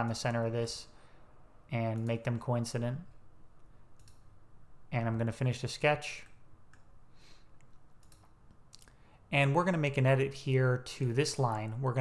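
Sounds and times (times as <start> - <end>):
low room noise: 0.0 - 12.0
computer mouse click: 3.6 - 4.3, 6.2 - 6.9, 7.6 - 9.0.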